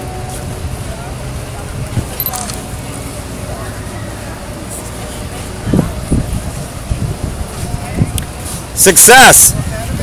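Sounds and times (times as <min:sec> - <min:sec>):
low outdoor rumble: 0:00.0 - 0:08.9.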